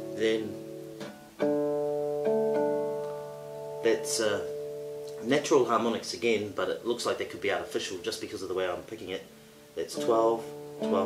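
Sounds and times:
classical guitar notes plucked: 0.0s - 11.0s.

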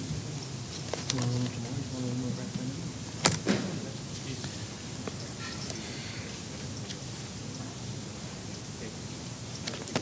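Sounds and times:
sharp knock: 3.3s - 3.8s.

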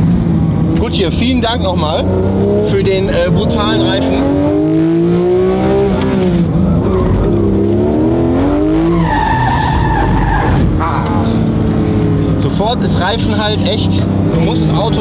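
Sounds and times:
car engine revving: 0.0s - 15.0s
tyres squealing: 8.7s - 11.4s.

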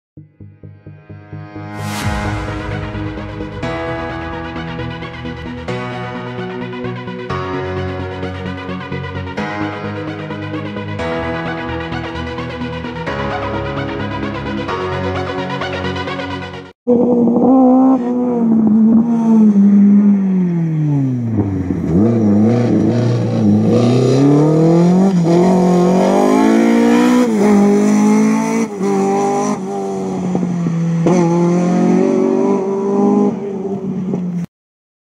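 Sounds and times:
rally car engine revving: 16.9s - 34.4s.

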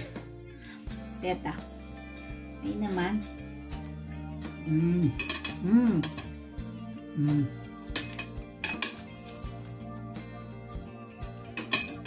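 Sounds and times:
cutlery scraping on a plate: 5.2s - 6.3s, 7.9s - 9.4s, 11.6s - 12.0s.

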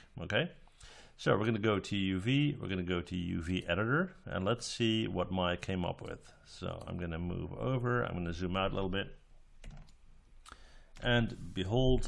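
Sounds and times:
low room hiss: 0.0s - 12.0s
computer mouse clicks: 9.6s - 11.1s.

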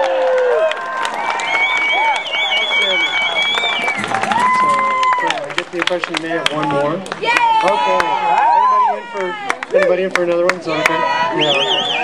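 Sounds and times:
small audience clapping: 0.0s - 11.7s.

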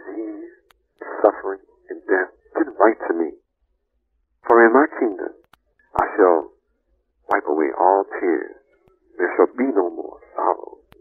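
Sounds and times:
person talking on old recording: 0.0s - 3.4s, 4.4s - 6.6s, 7.3s - 8.6s, 9.2s - 11.0s.

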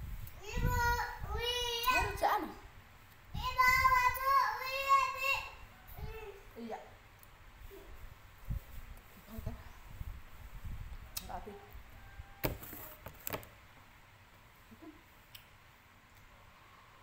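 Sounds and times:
child sing-song voice: 0.4s - 2.2s, 3.3s - 6.4s.

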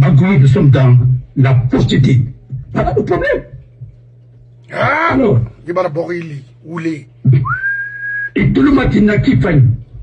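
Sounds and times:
person whistling a note: 7.4s - 8.4s.

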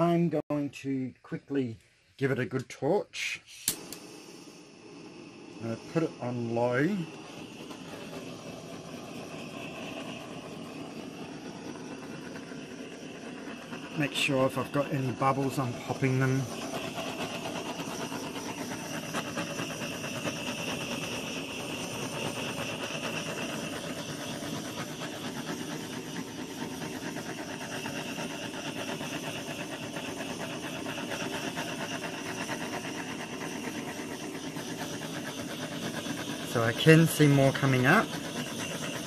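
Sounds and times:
gas torch hissing: 1.5s - 39.0s.

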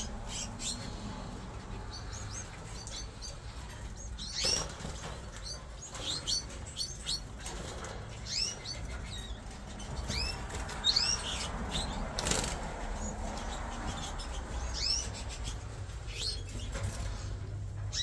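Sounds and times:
canaries chirping: 0.0s - 18.0s.

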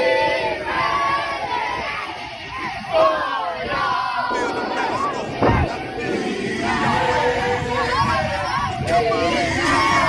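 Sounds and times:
children shouting and cheering: 0.0s - 10.0s.

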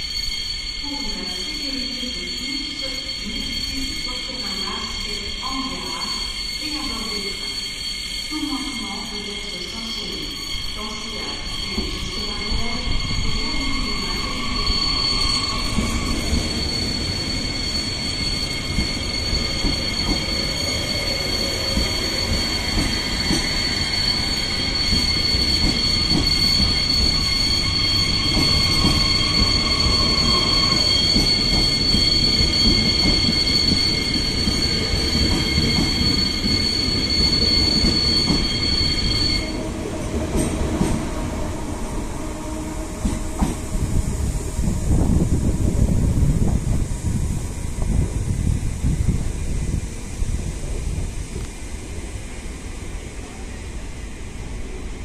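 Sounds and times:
high-pitched brake squeal: 0.0s - 46.8s
train rolling rumble: 8.8s - 55.0s.

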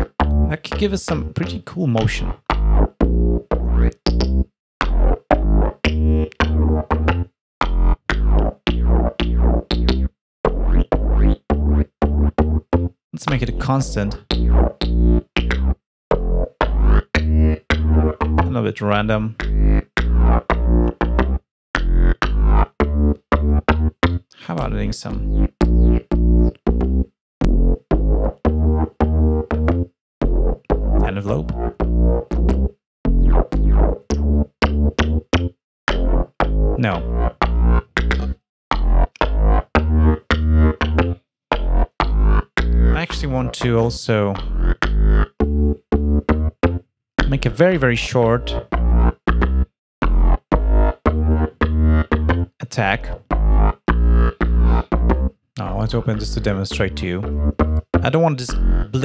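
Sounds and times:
synthesizer bassline: 0.0s - 59.0s.

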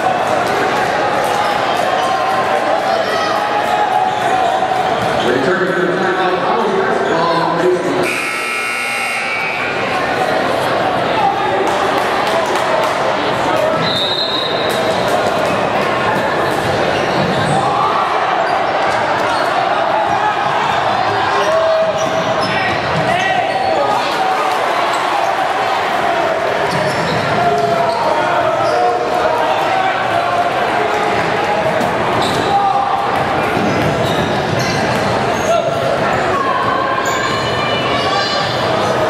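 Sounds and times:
crowd chatter: 0.0s - 39.0s
sneakers squeaking: 21.4s - 24.0s, 26.6s - 29.0s, 31.8s - 37.7s.

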